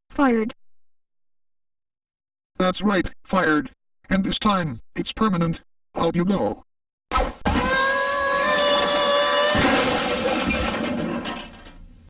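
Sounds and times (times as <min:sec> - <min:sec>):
cartoon glass shattering: 0:09.4 - 0:11.8.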